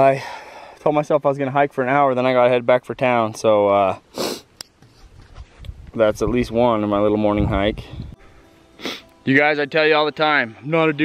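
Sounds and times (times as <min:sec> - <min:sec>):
man sniffing: 0:04.1 - 0:04.6, 0:08.8 - 0:09.1.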